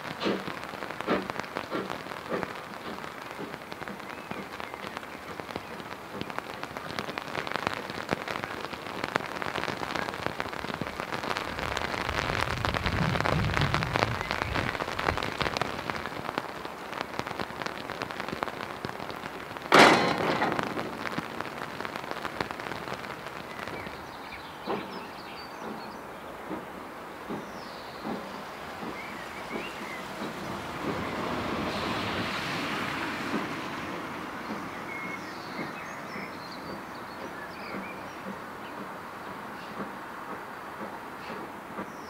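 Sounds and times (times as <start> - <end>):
rain pattering: 0.0 - 42.0
loud crack: 8.6 - 24.0.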